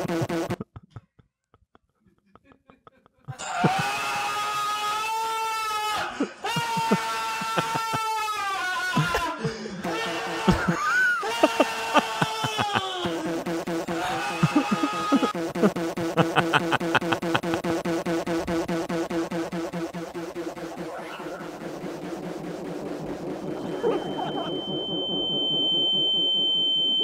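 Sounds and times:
men laughing hard: 0.5 - 4.5, 5.8 - 17.9, 23.4 - 24.6.

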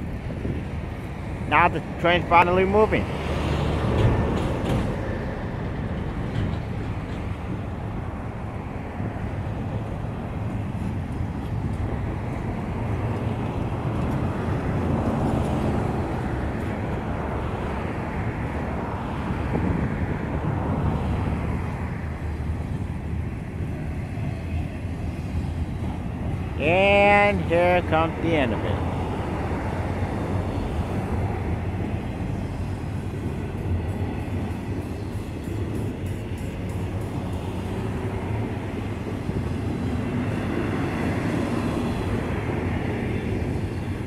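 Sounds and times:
freight train wheels rumbling on rails: 0.0 - 44.0.

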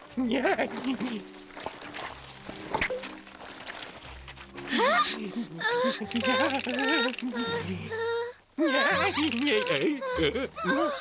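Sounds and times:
background music: 0.0 - 11.0
wordless cartoon voice: 5.9 - 11.0.

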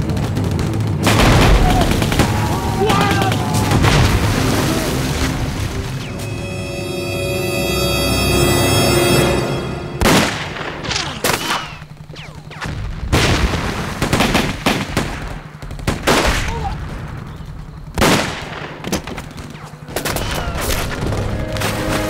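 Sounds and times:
loud gunshots and booms: 0.0 - 5.8, 10.0 - 21.6
ominous film score: 0.0 - 22.0.

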